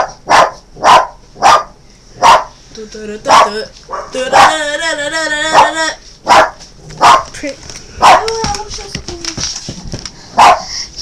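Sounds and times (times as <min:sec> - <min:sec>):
dog barking: 0:00.0 - 0:02.6, 0:03.3 - 0:04.6, 0:05.5 - 0:07.3, 0:08.0 - 0:08.3, 0:10.4 - 0:10.7.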